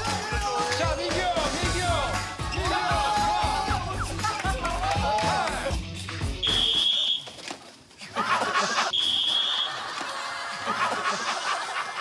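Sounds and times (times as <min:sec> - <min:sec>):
dance music: 0:00.0 - 0:06.8
whistle blasts: 0:06.4 - 0:07.5, 0:08.9 - 0:09.8
laughter: 0:08.0 - 0:12.0.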